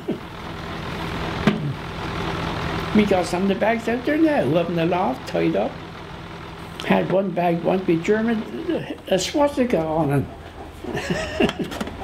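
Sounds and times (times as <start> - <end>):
engine running: 0.0 - 12.0.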